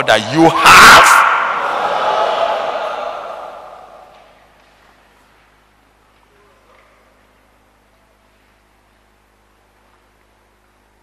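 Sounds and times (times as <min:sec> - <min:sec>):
congregation shouting reply: 0:00.6 - 0:04.2.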